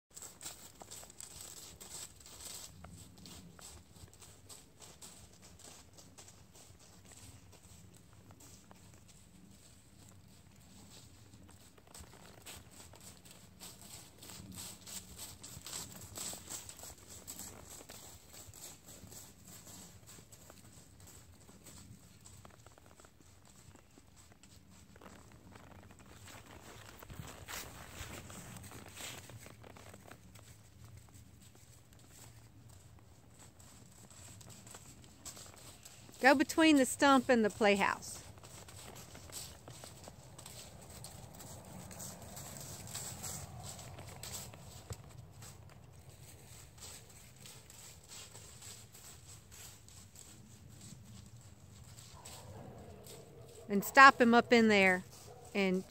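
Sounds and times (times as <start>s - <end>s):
hoofbeats on dry leaves: 0.1s - 55.9s.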